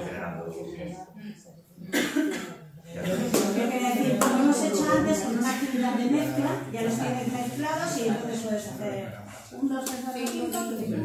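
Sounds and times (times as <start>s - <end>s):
person coughing: 1.9s - 3.2s.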